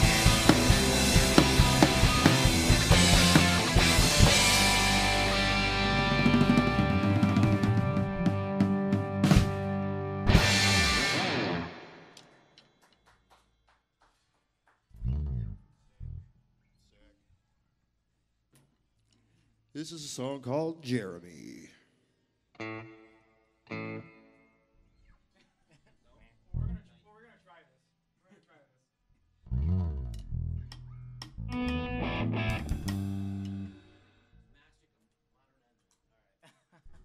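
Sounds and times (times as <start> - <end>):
electric bass guitar note bending: 0.0 - 11.8, 15.0 - 16.3, 29.5 - 33.8.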